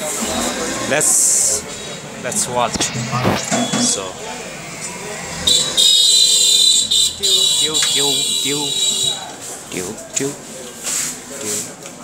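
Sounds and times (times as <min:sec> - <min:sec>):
high-pitched electronic alarm buzzer: 0:05.3 - 0:09.2.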